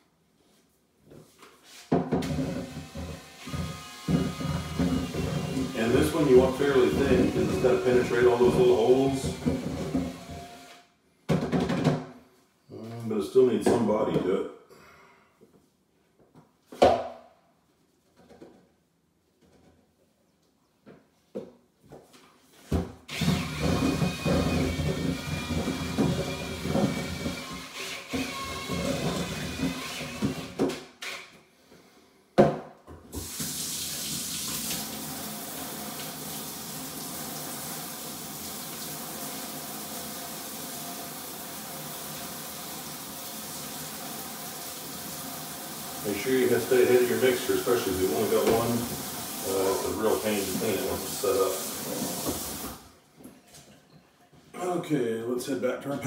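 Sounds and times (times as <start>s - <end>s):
faucet water running into sink: 33.2s - 52.8s.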